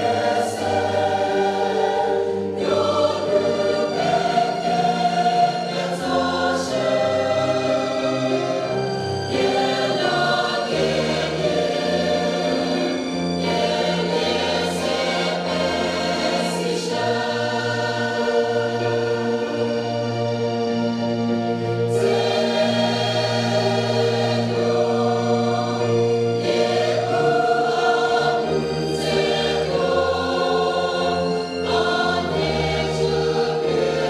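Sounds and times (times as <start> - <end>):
mixed choir singing: 0.0 - 34.0.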